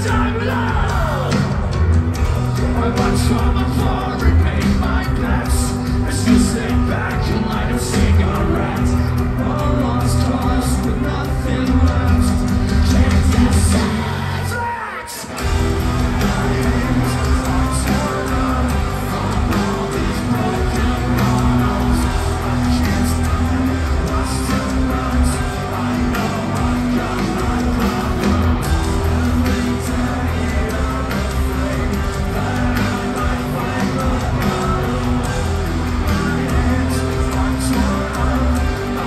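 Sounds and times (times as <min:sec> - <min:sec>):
drums: 0:00.0 - 0:39.0
guitars: 0:00.0 - 0:39.0
sung and shouted vocals: 0:00.0 - 0:39.0.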